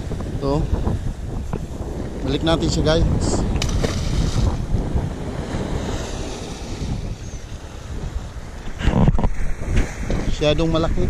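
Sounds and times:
wind buffeting microphone: 0.0 - 11.0
sea water splashing: 3.5 - 8.6.

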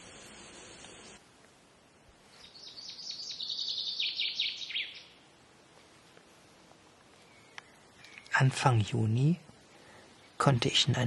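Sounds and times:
songbird singing: 2.2 - 5.5, 7.0 - 10.7.

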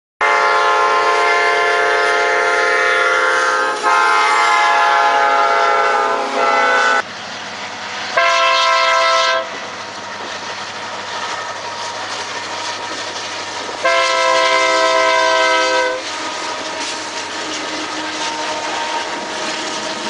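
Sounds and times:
locomotive air horn blasts: 0.2 - 7.0, 8.2 - 9.6, 13.8 - 16.1, 18.0 - 19.3
passing train rumble: 0.2 - 20.0.

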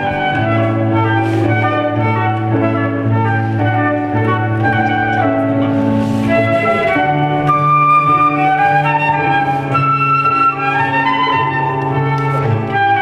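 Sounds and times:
flute playing slow melody: 0.0 - 13.0
low accompaniment: 0.0 - 13.0.

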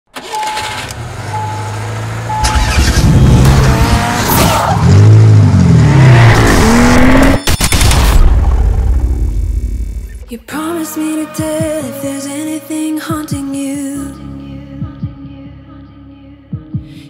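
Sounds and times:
car engine revving: 0.2 - 7.4
short electronic beeps: 1.3 - 1.7, 2.3 - 3.4
tire squeal: 2.4 - 5.1.

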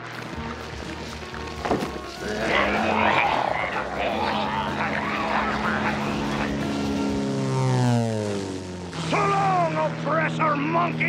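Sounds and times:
propeller engine drone: 0.0 - 11.0.

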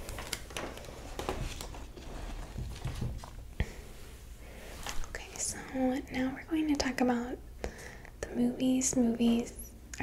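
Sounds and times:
woman speaking softly: 5.1 - 7.4, 8.2 - 10.0.

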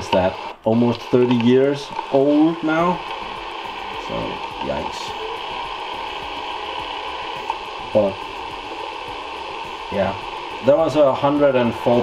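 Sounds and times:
tape hiss and hum: 0.0 - 12.0
man's voice: 4.0 - 5.2, 9.9 - 12.0.

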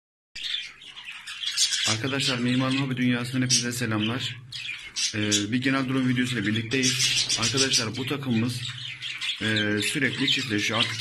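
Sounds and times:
budgerigars chirping and chattering: 0.4 - 11.0.

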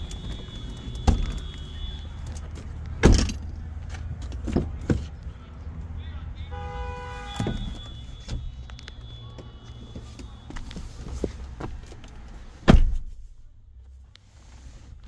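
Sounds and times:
car door clunk: 0.1 - 1.5, 3.0 - 3.5, 12.6 - 13.2.

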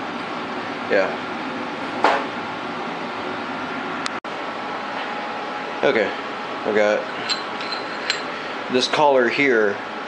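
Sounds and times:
fan-like background noise: 0.0 - 10.0.

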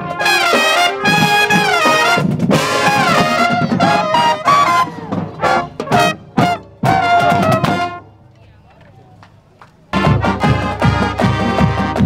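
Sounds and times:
heavy drum beats: 0.0 - 8.0, 9.9 - 12.0
marching band brass: 0.0 - 12.0.

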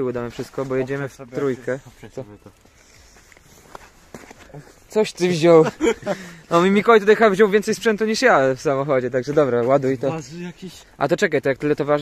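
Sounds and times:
quiet footsteps on concrete: 0.2 - 5.0.

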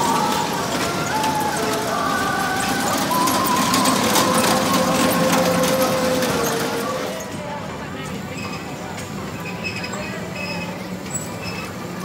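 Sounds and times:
toy cars rattling over concrete: 0.0 - 7.1
simple carousel tune: 0.0 - 7.4.

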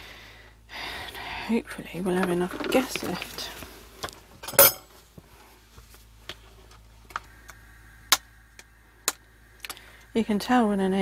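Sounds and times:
cookware clattering: 4.4 - 4.9.

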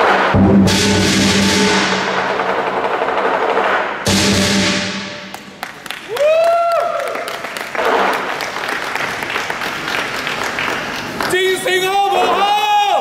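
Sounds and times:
crowd applauding and cheering: 5.2 - 13.0
person shouting: 11.7 - 13.0.

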